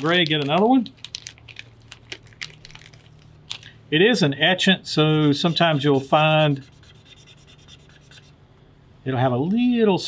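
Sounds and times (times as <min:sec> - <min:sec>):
paper wrapper rustling: 0:00.0 - 0:03.8.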